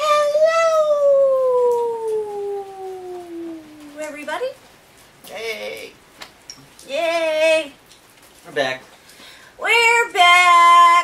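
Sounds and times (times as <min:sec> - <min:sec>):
woman howling: 0:00.0 - 0:04.2.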